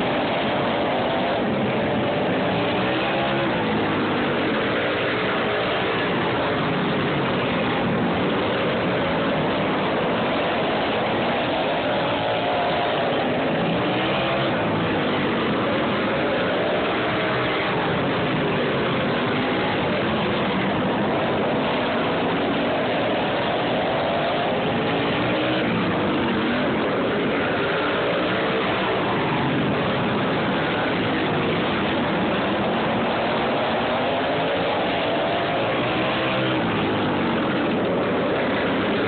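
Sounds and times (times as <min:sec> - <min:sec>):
racing tractor engines: 0:00.0 - 0:39.0.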